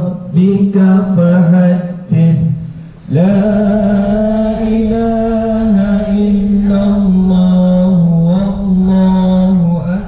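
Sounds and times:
person chanting recitation: 0.0s - 10.0s.

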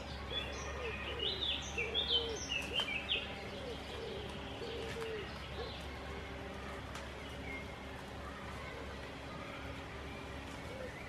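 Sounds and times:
dove cooing: 0.0s - 11.0s
small birds chirping: 0.0s - 11.0s.

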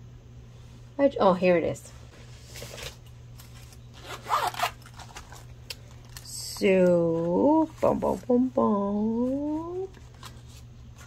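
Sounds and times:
zipper being pulled open: 4.0s - 5.0s.

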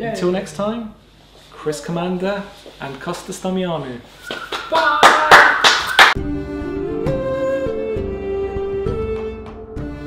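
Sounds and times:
hand claps: 4.3s - 6.2s.

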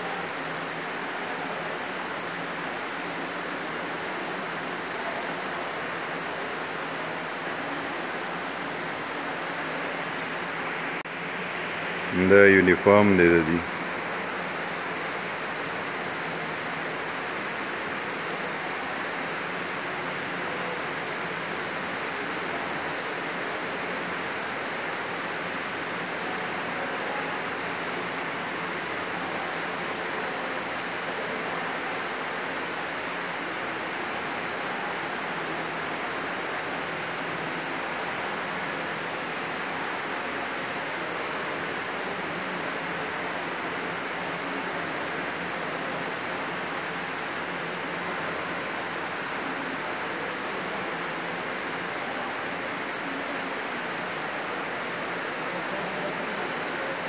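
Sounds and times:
steady rushing hiss: 0.0s - 57.0s.

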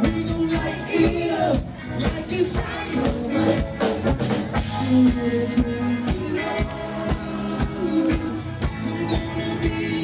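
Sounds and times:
drum-kit beat: 0.0s - 10.0s
live band playing dance-pop: 0.0s - 10.0s.

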